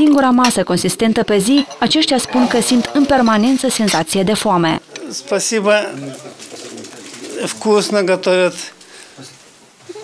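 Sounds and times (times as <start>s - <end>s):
elderly man speaking: 7.3s - 9.4s.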